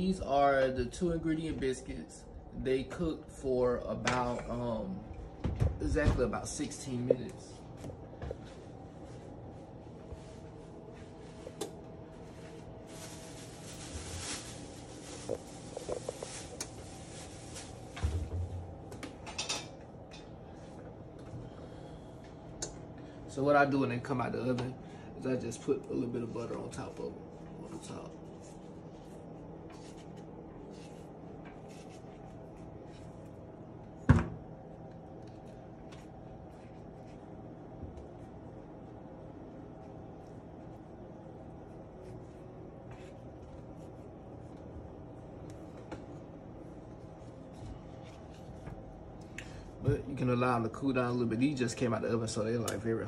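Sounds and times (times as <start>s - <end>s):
low room hum: 0.0s - 53.0s
paper crinkling: 12.6s - 18.0s.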